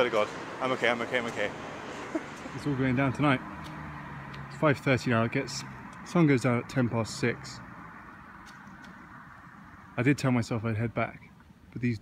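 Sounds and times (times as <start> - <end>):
car driving away: 0.0 - 10.0
road ambience: 0.0 - 12.0.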